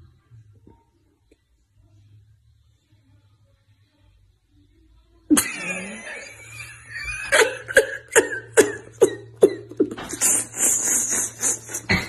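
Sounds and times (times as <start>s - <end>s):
man laughing loudly: 5.4s - 12.0s.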